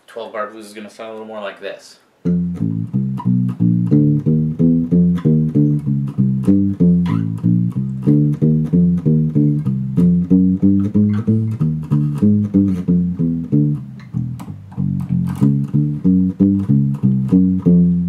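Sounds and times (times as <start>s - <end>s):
electric bass playing muted blues: 2.2s - 18.0s.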